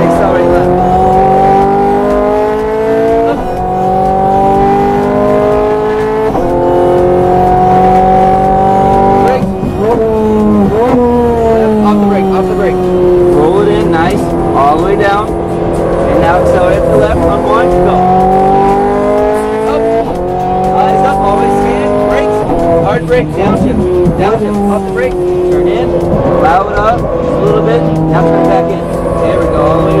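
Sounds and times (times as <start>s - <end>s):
car engine accelerating: 0.0s - 30.0s.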